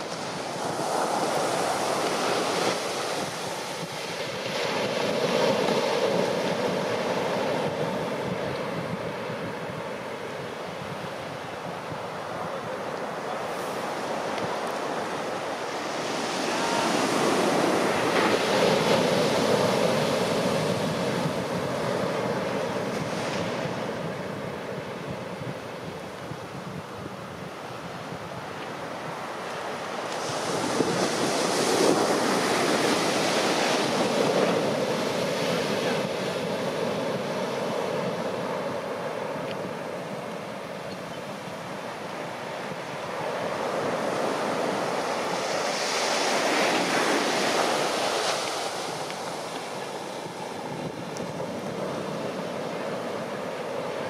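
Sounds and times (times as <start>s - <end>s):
ocean waves breaking on beach: 0.0s - 54.0s.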